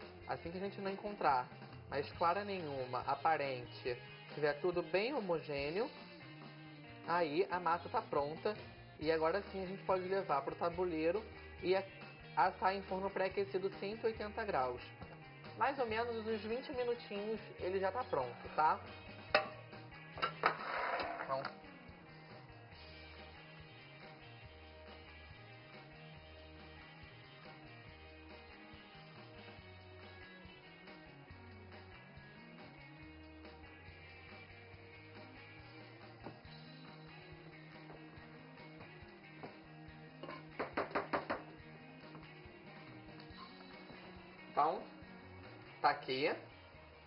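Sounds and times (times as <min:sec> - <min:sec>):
soft background music: 0:00.0 - 0:47.0
knocks on metal cake pan: 0:19.4 - 0:19.6, 0:40.2 - 0:41.5
spatula scraping glass bowl: 0:20.2 - 0:21.4.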